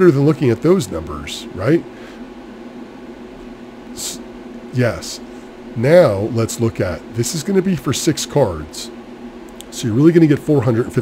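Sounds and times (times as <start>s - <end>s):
fan-like hum and hiss: 0.0s - 11.0s.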